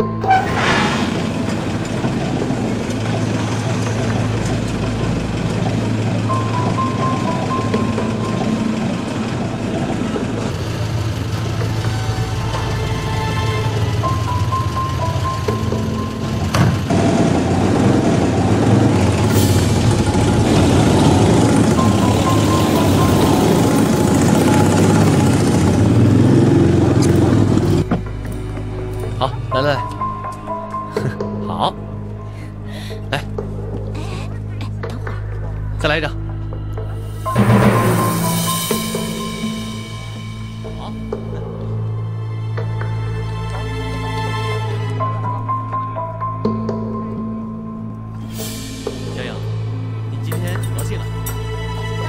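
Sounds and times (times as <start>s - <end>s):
background music score: 0.0s - 52.0s.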